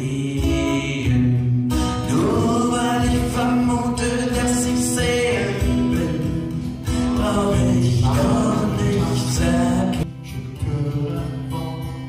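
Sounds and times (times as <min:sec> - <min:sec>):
acoustic guitars playing: 0:00.0 - 0:12.0
man singing: 0:00.0 - 0:12.0.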